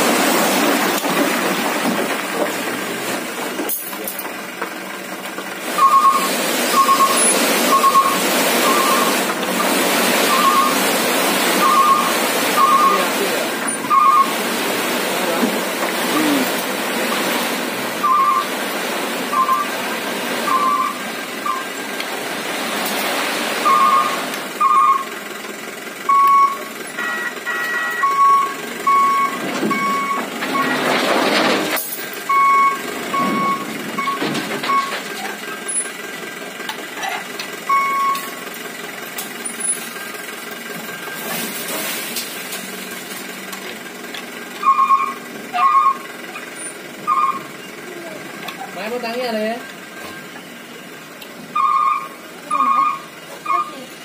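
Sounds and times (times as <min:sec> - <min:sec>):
soil sliding off truck bed: 0:00.0 - 0:24.6, 0:28.8 - 0:36.3, 0:36.9 - 0:45.6
truck engine running: 0:00.0 - 0:54.0
truck warning beeper: 0:05.8 - 0:09.2, 0:10.2 - 0:14.4, 0:18.0 - 0:18.6, 0:19.3 - 0:19.8, 0:20.4 - 0:21.8, 0:23.6 - 0:25.1, 0:26.1 - 0:30.9, 0:32.3 - 0:35.0, 0:37.6 - 0:38.4, 0:44.6 - 0:46.1, 0:47.0 - 0:47.8, 0:51.5 - 0:54.0.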